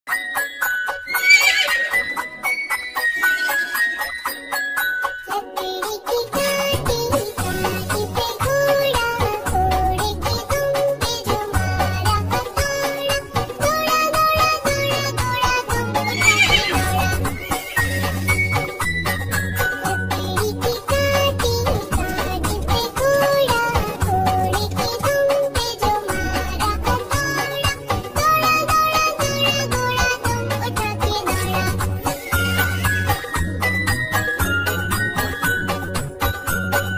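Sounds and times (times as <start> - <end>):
music: 0.1 - 36.9
horse whinnying: 1.1 - 2.2, 16.0 - 18.2
rhythmic hoofbeats: 14.4 - 19.7.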